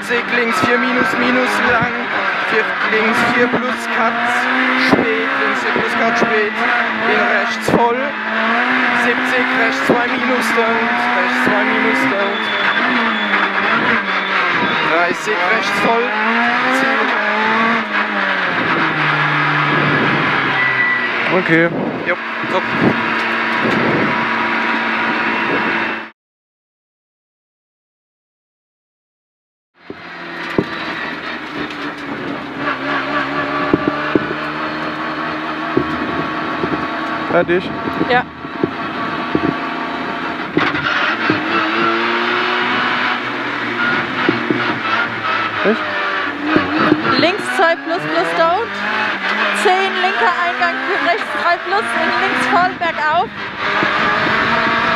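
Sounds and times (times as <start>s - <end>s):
car engine decelerating: 0.0s - 26.1s, 29.8s - 54.9s.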